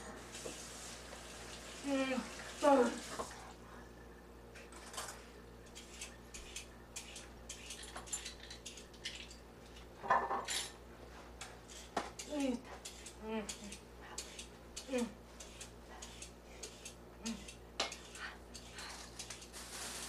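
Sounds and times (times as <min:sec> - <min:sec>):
dishes and utensils clattering: 0:04.6 - 0:10.8.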